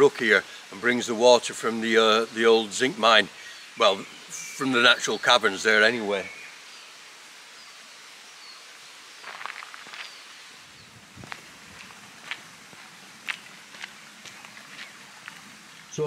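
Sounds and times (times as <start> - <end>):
steady outdoor hiss: 0.0 - 16.0
footsteps on tarmac: 9.2 - 10.2, 11.1 - 15.9.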